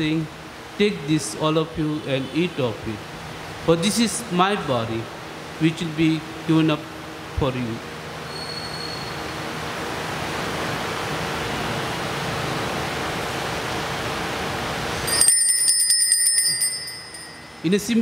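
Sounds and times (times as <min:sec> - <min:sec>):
high-pitched bell rung rapidly: 0:15.0 - 0:18.0.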